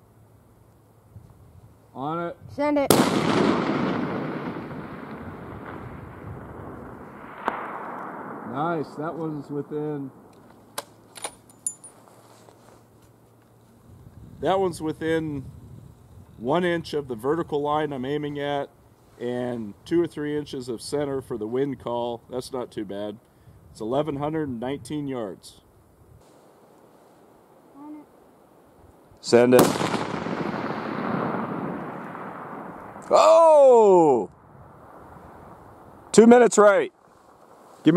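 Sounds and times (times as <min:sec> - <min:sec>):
rifle shot echoing: 0:02.9 - 0:11.0, 0:29.4 - 0:33.2
rifle bolt clicks: 0:10.4 - 0:11.7
high metallic clink: 0:11.1 - 0:12.2.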